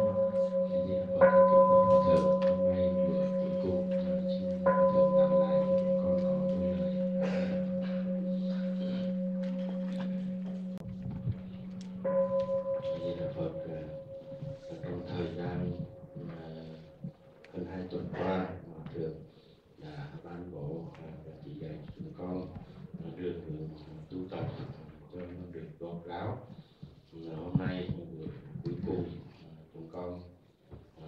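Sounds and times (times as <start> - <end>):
temple bell ringing: 0.0 - 17.1
low steady hum: 0.0 - 19.2.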